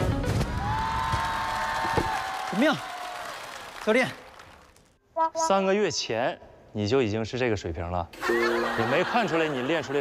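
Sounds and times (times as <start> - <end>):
background music held note: 5.1 - 5.9.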